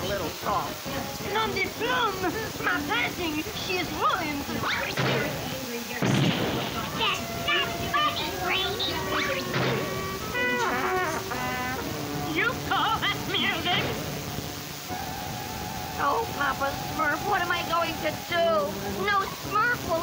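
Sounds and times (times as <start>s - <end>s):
cartoon crash: 4.7s - 8.4s, 9.1s - 11.8s
cartoon music with sliding notes: 6.8s - 20.0s.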